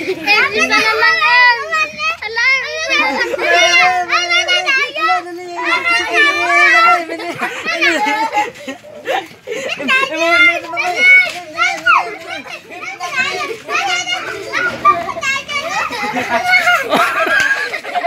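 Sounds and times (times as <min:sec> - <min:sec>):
children shouting excitedly: 0:00.0 - 0:18.0.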